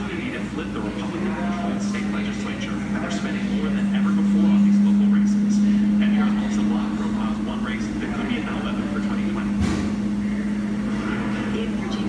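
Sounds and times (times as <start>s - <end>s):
faint radio talk: 0.0s - 12.0s
washing machine drum humming: 0.0s - 12.0s.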